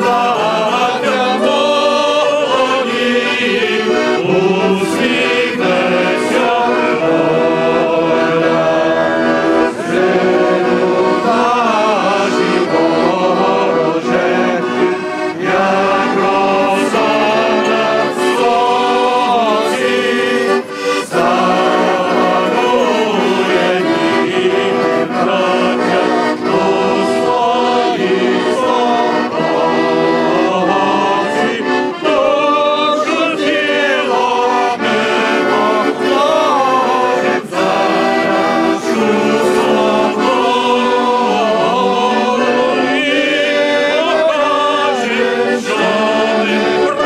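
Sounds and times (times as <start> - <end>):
accordion: 0.0 - 47.0
crowd singing slow song: 0.0 - 47.0.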